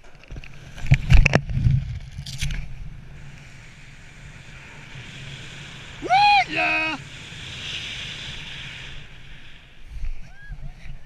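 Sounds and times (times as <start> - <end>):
rushing air: 0.6 - 11.0.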